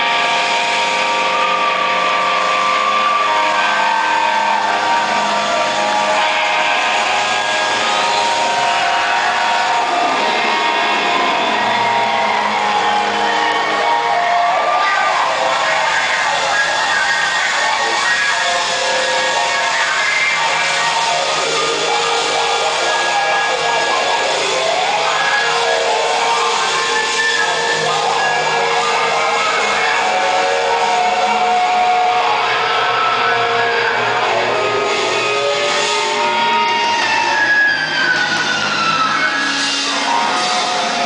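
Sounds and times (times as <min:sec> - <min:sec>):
electric guitar notes bending: 0:00.0 - 0:41.0
live rock band playing: 0:00.0 - 0:41.0.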